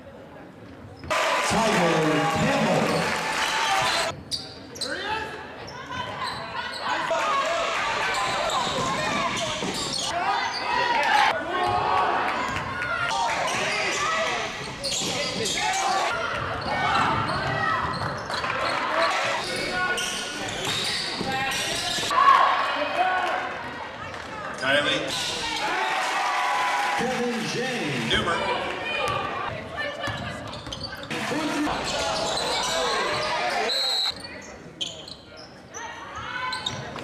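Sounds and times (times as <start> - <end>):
basketball bouncing on court: 16.3 - 18.4.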